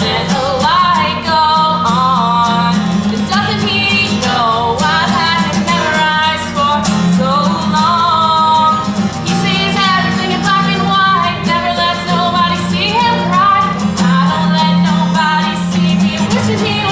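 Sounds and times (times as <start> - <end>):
strummed acoustic guitar: 0.0 - 16.9
woman singing: 0.0 - 16.9.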